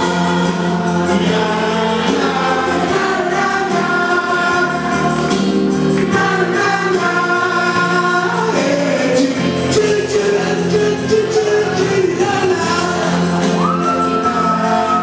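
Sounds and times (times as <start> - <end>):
man singing into a microphone: 0.0 - 15.0
recorded backing track: 0.0 - 15.0.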